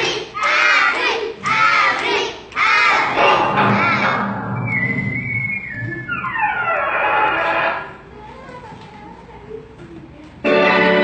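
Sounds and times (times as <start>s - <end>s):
falling whistle tone: 4.2s - 7.0s.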